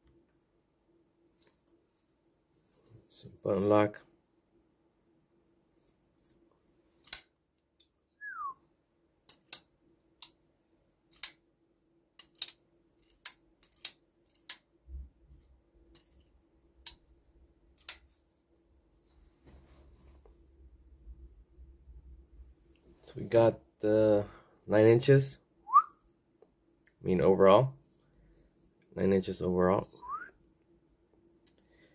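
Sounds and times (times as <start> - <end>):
folding knife clicks: 7.0 - 7.3, 12.2 - 14.6.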